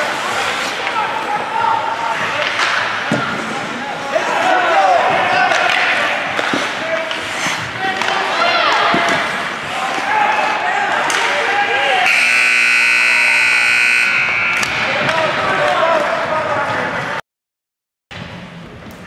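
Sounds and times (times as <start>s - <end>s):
players and spectators shouting: 3.6s - 17.2s
scoreboard buzzer blast: 12.0s - 15.0s.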